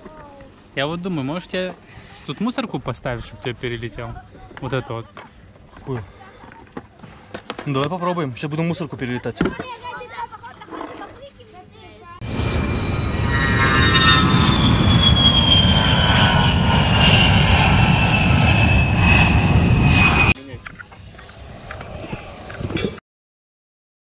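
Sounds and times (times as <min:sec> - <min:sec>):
jet airplane roar: 0:12.2 - 0:23.0.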